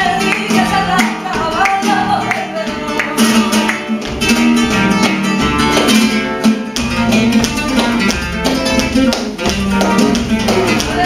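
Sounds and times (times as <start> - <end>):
acoustic flamenco guitar: 0.0 - 11.0.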